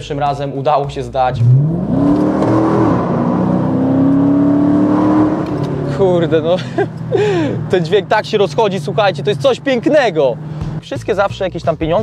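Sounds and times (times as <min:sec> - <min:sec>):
car engine accelerating: 0:00.8 - 0:11.0.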